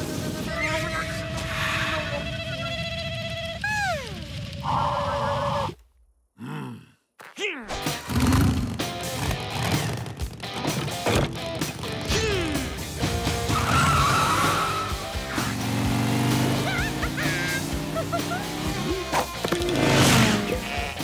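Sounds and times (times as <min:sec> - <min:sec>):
busy cartoon music: 0:07.7 - 0:21.0.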